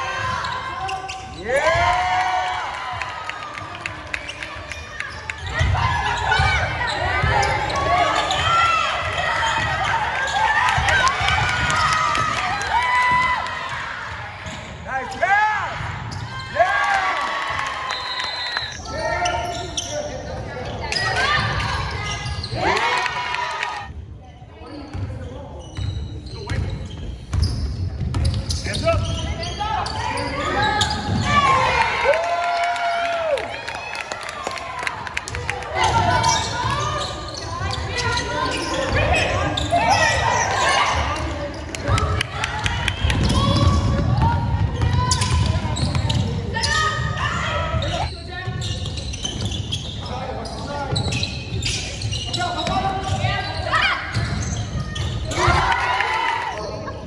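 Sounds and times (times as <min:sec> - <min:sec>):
players and spectators calling: 0:00.0 - 0:23.9, 0:28.4 - 0:57.0.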